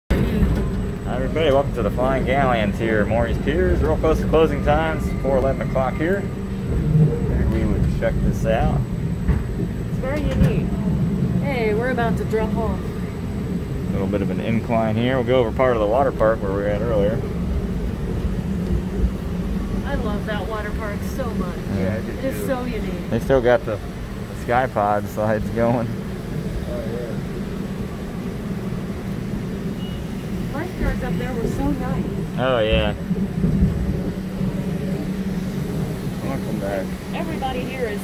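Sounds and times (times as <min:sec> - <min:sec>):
amusement ride rumbling on track: 0:00.1 - 0:38.0.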